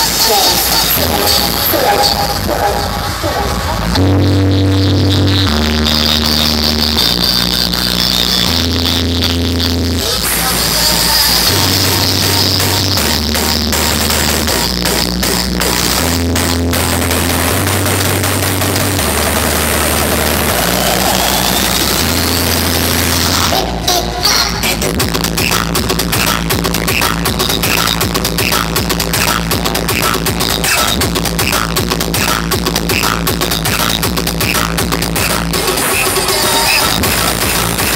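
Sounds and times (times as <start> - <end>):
deep bass line: 0.0 - 37.9
loud electronic dance music: 0.0 - 37.9
rising sweep: 17.2 - 23.5.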